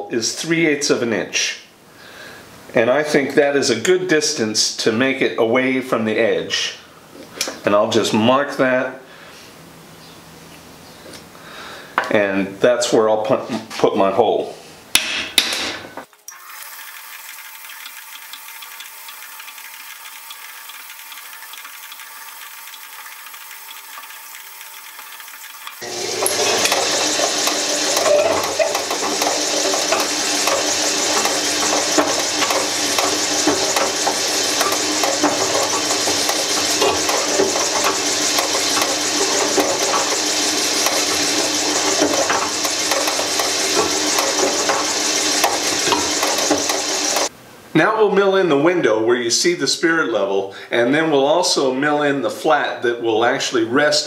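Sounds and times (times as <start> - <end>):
drill bit cutting plastic: 16.3 - 47.3
drill press running: 16.3 - 47.3.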